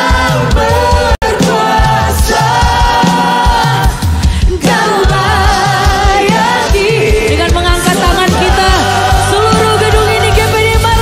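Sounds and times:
backing vocalists singing: 0.0s - 11.0s
band with steady beat: 0.0s - 11.0s
lead singer: 0.0s - 11.0s.

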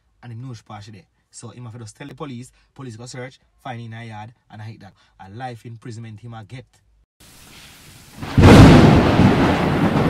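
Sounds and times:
thunder-like rumble: 8.2s - 10.0s.

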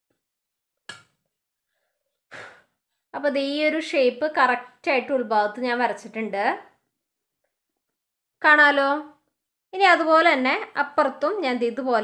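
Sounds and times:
person sighing breath: 2.3s - 2.7s.

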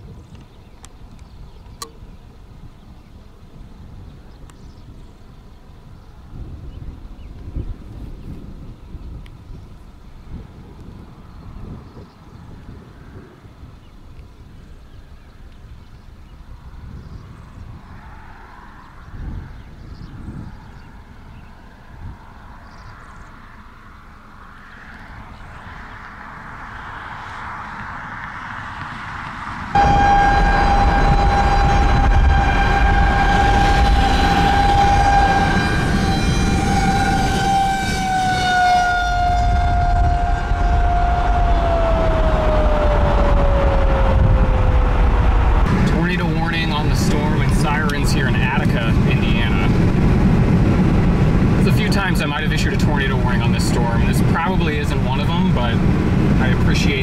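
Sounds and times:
car road noise: 0.0s - 57.0s
warning siren wailing: 29.7s - 49.5s.

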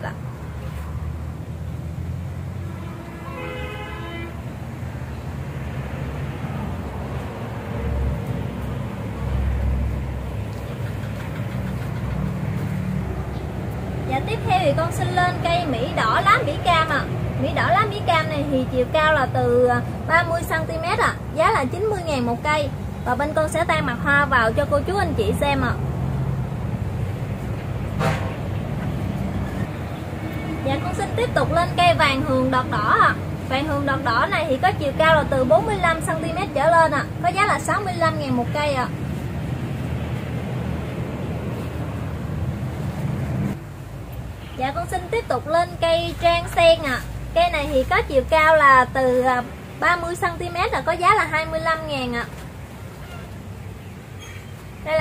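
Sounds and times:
vehicle engines rumbling past: 0.0s - 55.0s
vehicle horn: 2.6s - 4.4s.

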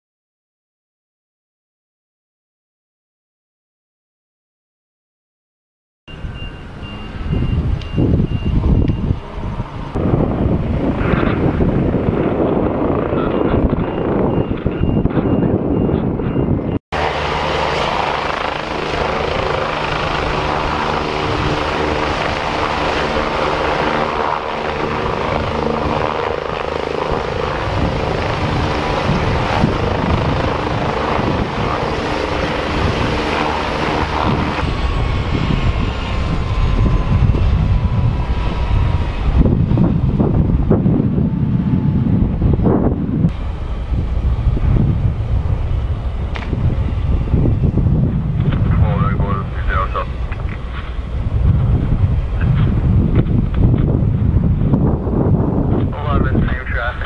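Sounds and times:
helicopter turbine and rotor: 6.1s - 57.0s
wind on microphone: 6.2s - 57.0s.

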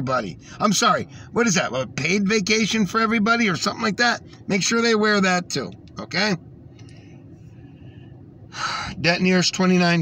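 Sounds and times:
man speaking: 0.0s - 6.4s, 8.8s - 10.0s
man's sharp intake of breath: 6.9s - 9.0s.

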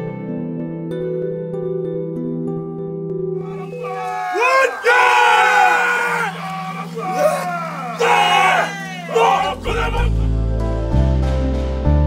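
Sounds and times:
men shouting a chant in unison: 3.4s - 10.4s.

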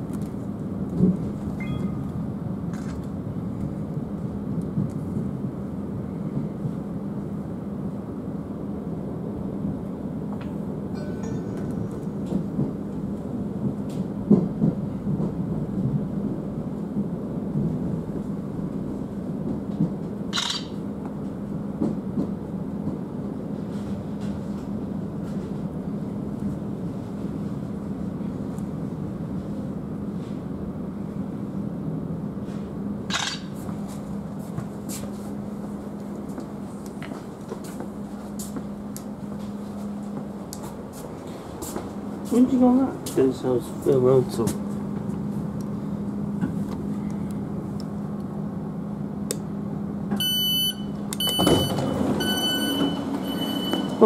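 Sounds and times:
train interior rumble and hum: 0.0s - 54.0s
high-pitched train squeak: 50.2s - 54.0s.

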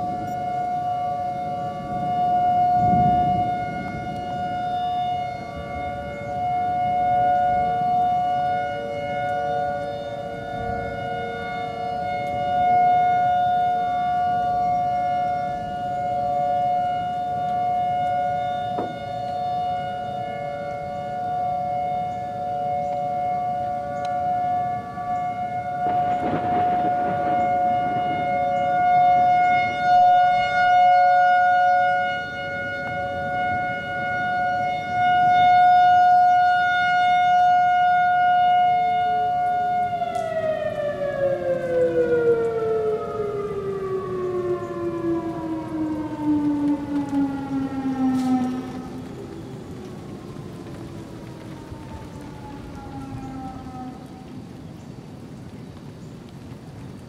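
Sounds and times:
warning siren steady chord: 0.0s - 57.0s.

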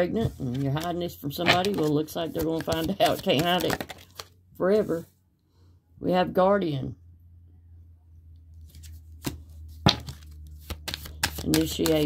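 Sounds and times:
cards tapping on a table: 9.2s - 12.0s.

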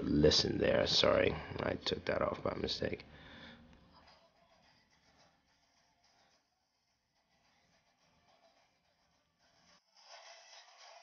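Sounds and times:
thin music leaking from headphones: 3.7s - 11.0s.

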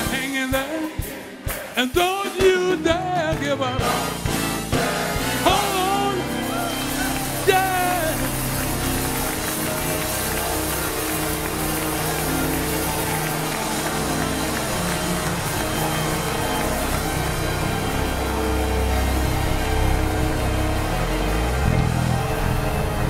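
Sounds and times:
church band playing: 0.0s - 23.0s.

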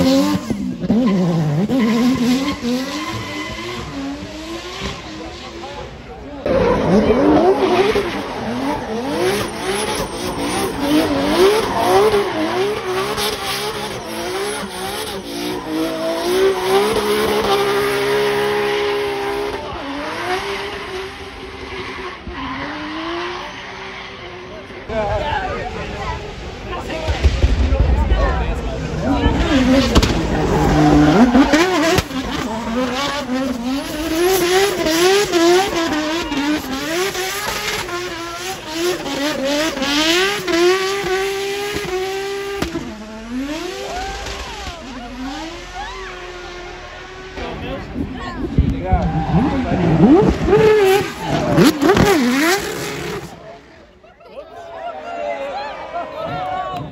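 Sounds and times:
car engine revving: 0.0s - 54.0s
tyre squeal: 0.8s - 4.2s.

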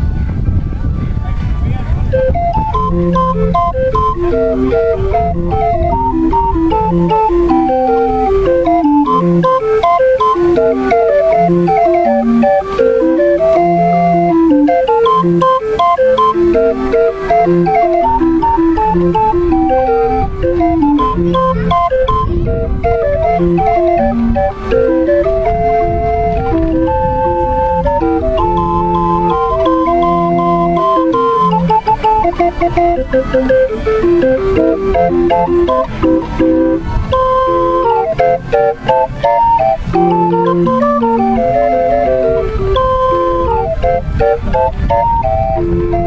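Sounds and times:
box organ melody: 2.0s - 46.0s.

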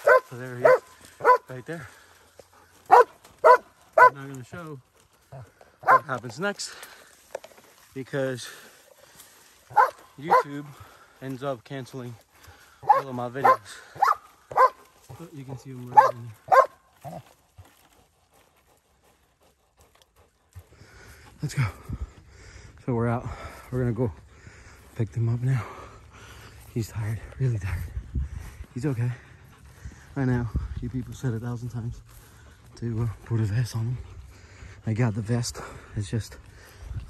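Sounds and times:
dog barking: 0.0s - 1.5s, 2.9s - 4.2s, 5.8s - 6.1s, 9.7s - 10.6s, 12.8s - 14.8s, 15.9s - 17.2s.

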